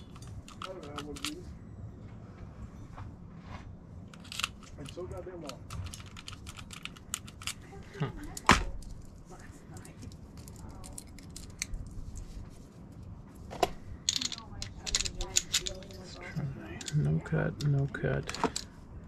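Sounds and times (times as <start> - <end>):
lock and keys clicking and rattling: 0.0 - 1.5, 4.1 - 9.1, 9.7 - 12.2, 14.0 - 18.8.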